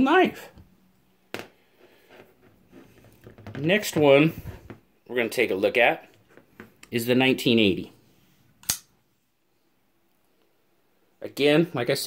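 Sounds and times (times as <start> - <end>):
sharp click: 8.6 - 8.9.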